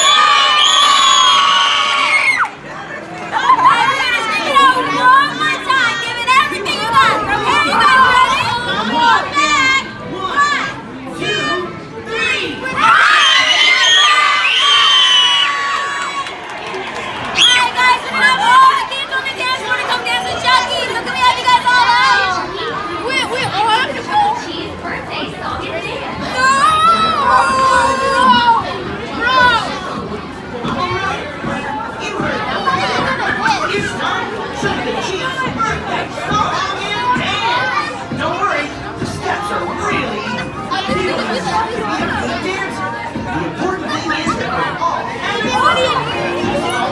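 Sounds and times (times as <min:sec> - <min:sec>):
children shouting and cheering: 0:00.0 - 0:10.7, 0:12.5 - 0:23.6, 0:26.2 - 0:29.8.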